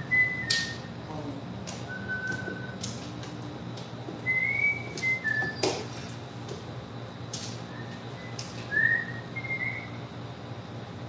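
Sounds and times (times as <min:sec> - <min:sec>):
person whistling: 0:01.9 - 0:02.8, 0:04.3 - 0:05.6, 0:07.7 - 0:10.0.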